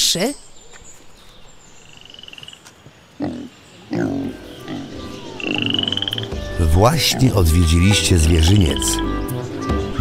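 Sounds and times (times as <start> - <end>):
low animal call: 3.2 - 10.0
high pulsing animal trill: 4.6 - 9.2.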